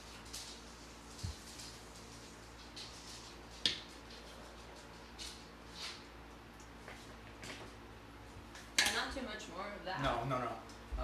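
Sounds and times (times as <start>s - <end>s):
seasonings sprinkled into blender jar: 0.0s - 6.0s
low steady kitchen hum: 0.0s - 11.0s.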